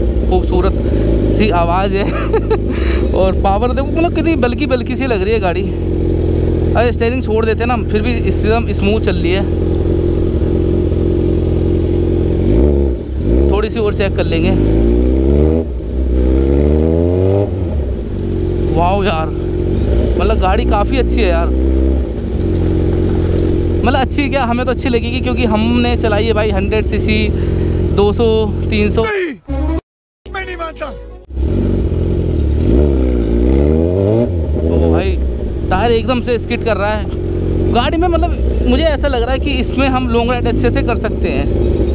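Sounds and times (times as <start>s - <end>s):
motorcycle engine cruising steadily: 0.0s - 28.9s, 31.3s - 41.9s
film dialogue: 17.7s - 31.6s, 34.7s - 41.4s.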